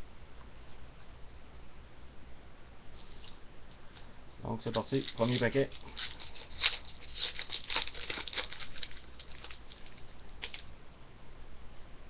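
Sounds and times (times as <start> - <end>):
foil wrapper crinkling: 4.6 - 10.7.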